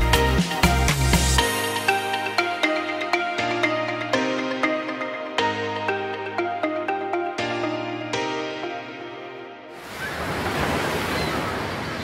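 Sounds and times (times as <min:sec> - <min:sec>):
rushing churning water: 0:09.8 - 0:12.0.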